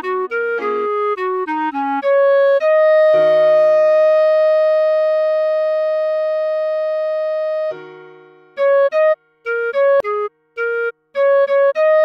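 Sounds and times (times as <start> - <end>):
clarinet held note: 0.0 - 12.0
piano chord: 6.7 - 8.6.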